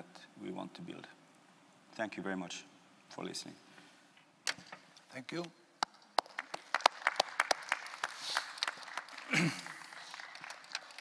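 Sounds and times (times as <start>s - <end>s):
hands clapping: 5.8s - 11.0s.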